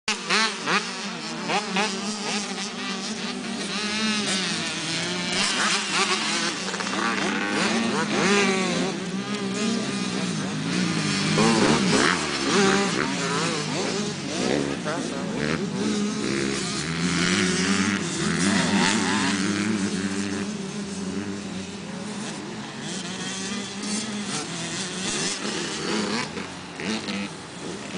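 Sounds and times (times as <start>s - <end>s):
motocross bike engines revving: 0.1s - 27.9s.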